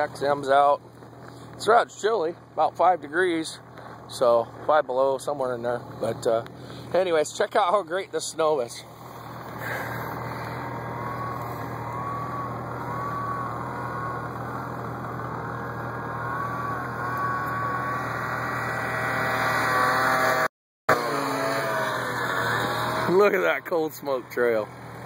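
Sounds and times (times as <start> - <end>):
snowmobile engine whining: 0.0 - 25.0.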